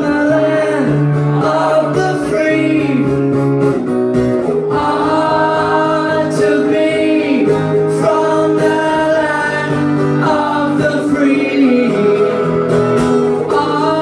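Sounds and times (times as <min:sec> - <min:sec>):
man singing: 0:00.0 - 0:03.5, 0:04.4 - 0:14.0
acoustic guitar strumming: 0:00.0 - 0:14.0.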